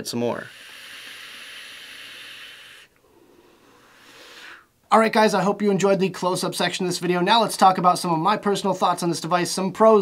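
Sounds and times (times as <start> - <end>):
air hissing through vape atomizer: 0.4 - 4.7
breathy exhale hiss: 0.4 - 4.8.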